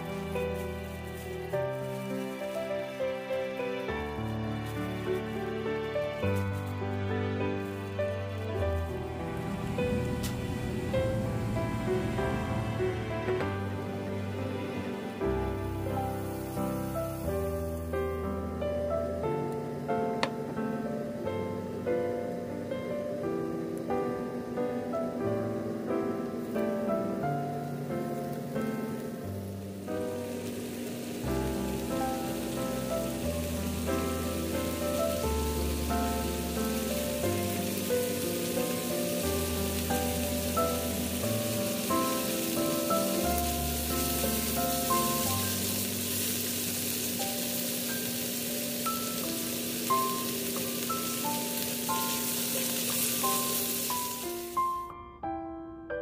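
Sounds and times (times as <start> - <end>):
meat sizzling in a frying pan: 0.0 - 6.6, 15.8 - 18.1, 26.4 - 54.8
piano music: 0.0 - 56.0.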